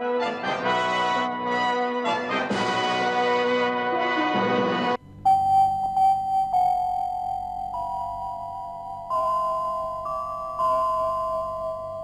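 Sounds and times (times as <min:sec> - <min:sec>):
music: 0:00.0 - 0:05.2, 0:06.3 - 0:12.0.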